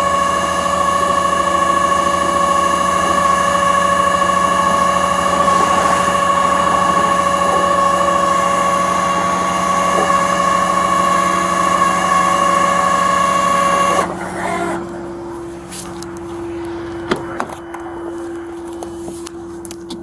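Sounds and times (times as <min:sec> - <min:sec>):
hydraulic winch whining: 0:00.0 - 0:19.7
low hum: 0:00.0 - 0:20.0
truck engine: 0:00.0 - 0:20.0.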